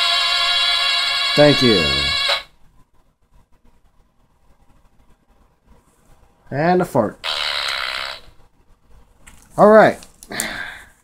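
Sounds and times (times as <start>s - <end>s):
electronic held tone: 0.0s - 2.5s.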